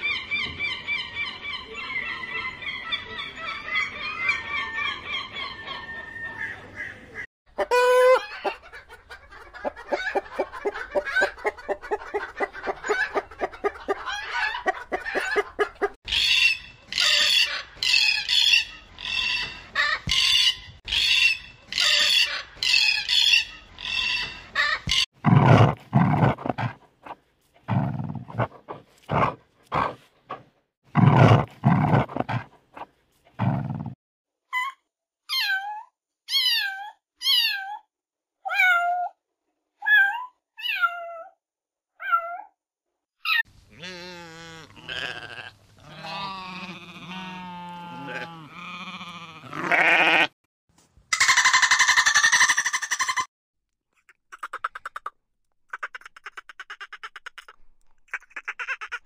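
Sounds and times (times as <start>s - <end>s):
falling animal calls: 43.3s - 50.3s
sheep bleating: 43.7s - 50.4s.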